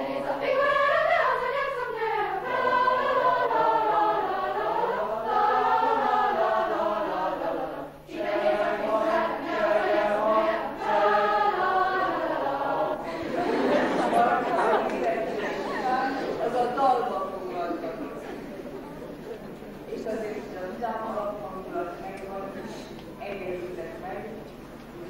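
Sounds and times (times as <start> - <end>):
noisy crowd: 0.0 - 4.8, 5.4 - 25.0
choir singing a cappella: 0.0 - 19.1.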